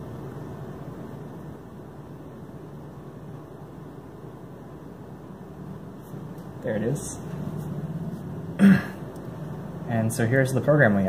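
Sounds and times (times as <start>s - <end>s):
fan hum: 0.0s - 11.0s.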